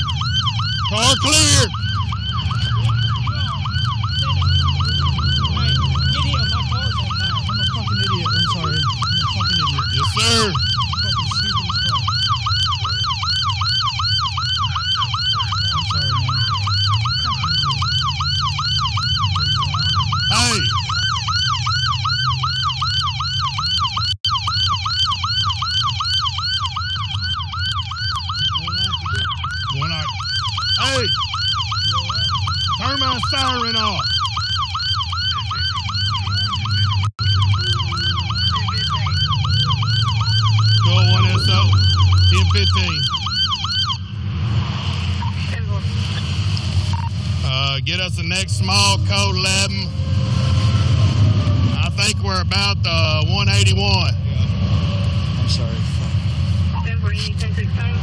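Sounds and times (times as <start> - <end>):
police siren yelping: 0.0 - 58.0.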